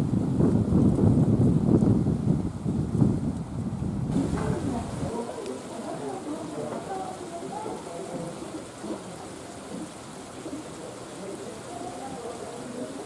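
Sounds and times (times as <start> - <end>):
steady rushing hiss: 0.0 - 13.0
distant people talking: 4.1 - 13.0.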